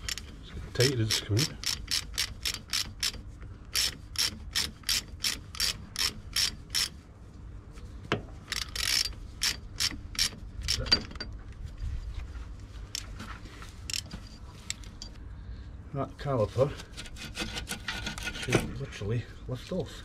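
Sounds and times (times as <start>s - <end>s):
hand ratchet clicking: 0.0s - 0.3s, 1.0s - 6.9s, 8.5s - 11.1s.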